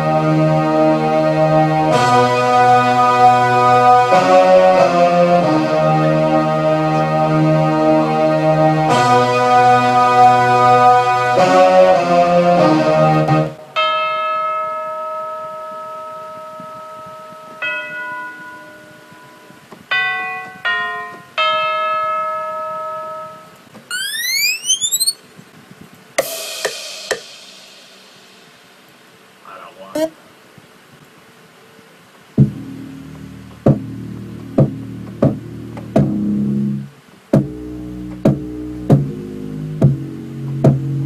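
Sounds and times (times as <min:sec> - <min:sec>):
bell-like synth notes: 0:23.9 - 0:25.2
rising synth sweep: 0:23.9 - 0:25.2
synthesizer chords: 0:23.9 - 0:25.2.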